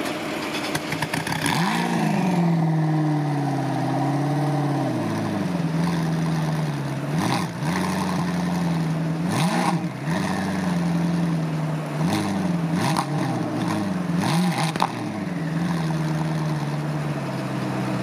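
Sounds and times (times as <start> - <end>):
vehicle engine running: 0.0 - 18.0.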